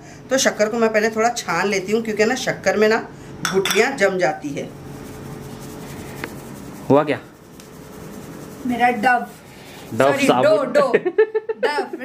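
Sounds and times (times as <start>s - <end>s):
woman's voice: 0.3s - 4.7s
sugar rustling through mesh strainer: 4.7s - 10.4s.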